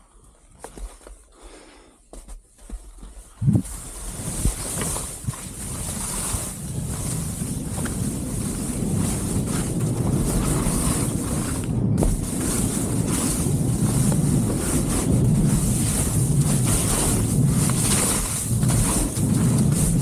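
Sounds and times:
wind buffeting microphone: 3.4 - 20.0
skis hissing over slushy snow: 3.6 - 20.0.

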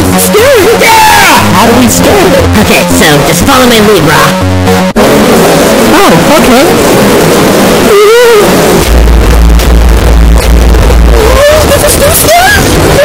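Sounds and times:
heavy bass rumble: 0.0 - 13.0
distorted cartoon voice wailing: 10.9 - 13.0.

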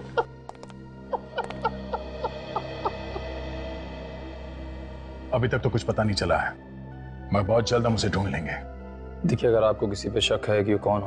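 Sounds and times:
background music drone: 0.0 - 11.0.

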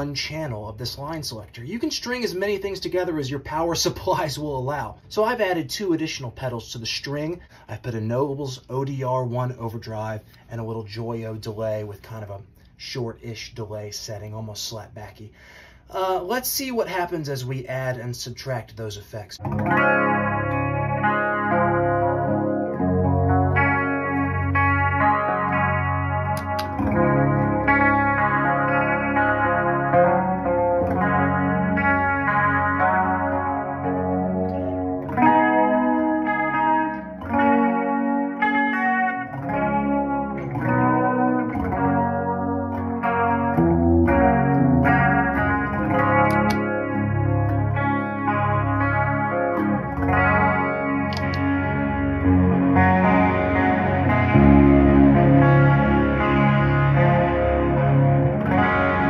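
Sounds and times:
electric guitar with chorus and overdrive: 0.0 - 16.3, 18.9 - 59.0.

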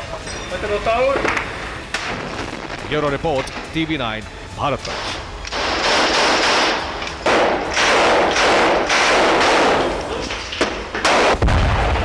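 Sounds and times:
deep heavy blast: 1.8 - 3.9, 11.1 - 12.0
automatic gunfire bursts: 5.5 - 10.0.

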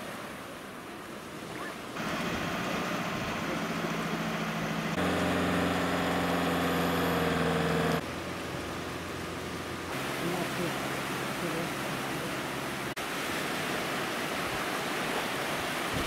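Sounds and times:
surf noise: 0.0 - 16.0
truck engine running under load: 2.0 - 9.9.

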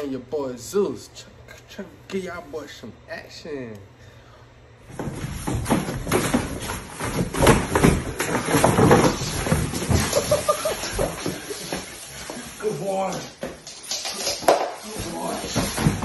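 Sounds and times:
knocks and thumps on wooden floor: 4.9 - 12.0, 13.4 - 16.0.

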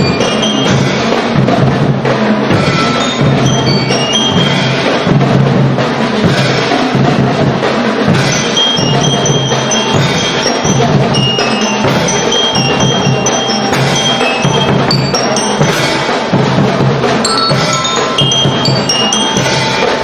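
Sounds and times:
bell lyre melody: 0.0 - 1.5, 2.5 - 5.2, 8.2 - 20.0
bass drums beating: 0.0 - 19.8.

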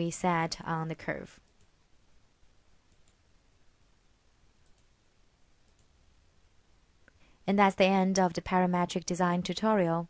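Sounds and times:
computer mouse clicks: 1.4 - 1.7, 2.9 - 3.2, 4.6 - 4.9, 5.6 - 6.0.

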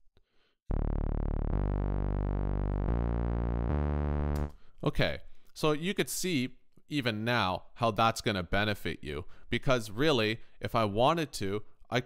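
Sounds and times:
low sustained synth notes: 0.7 - 4.5.

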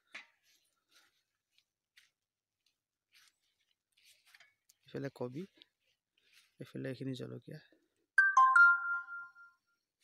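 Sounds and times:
electronic notification chime: 8.2 - 9.6.

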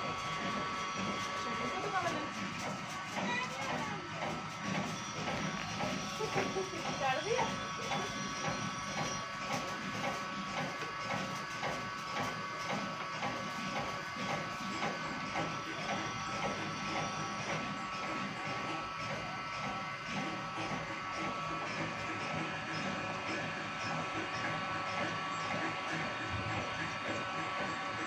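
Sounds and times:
oil press motor whine: 0.0 - 28.0.

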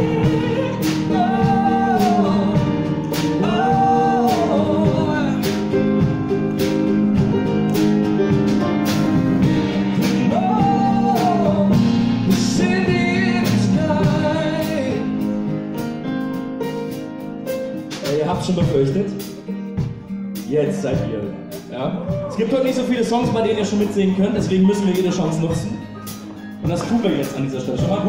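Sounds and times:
man singing: 0.0 - 6.1, 9.7 - 15.4
steady drum beat: 0.0 - 28.0.

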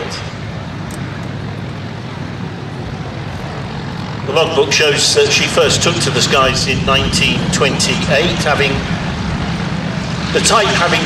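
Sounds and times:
propeller aircraft engines droning: 0.0 - 11.0.

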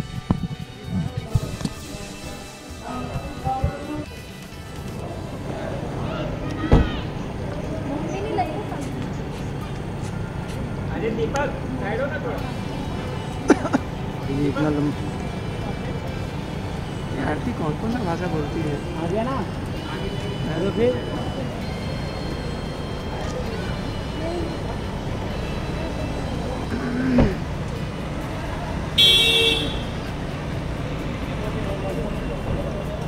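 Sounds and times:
car engine idling: 0.0 - 33.0
faint background chatter: 0.0 - 33.0
faint voices: 0.0 - 33.0
low rumble of street traffic: 0.0 - 33.0
car horn: 28.9 - 30.2.

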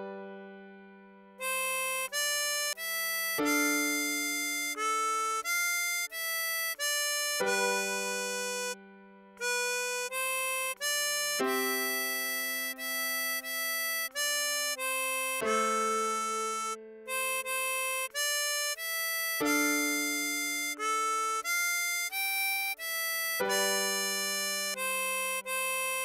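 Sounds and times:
piano chords: 0.0 - 21.6
harmonica melody: 1.4 - 8.8, 9.4 - 26.0.

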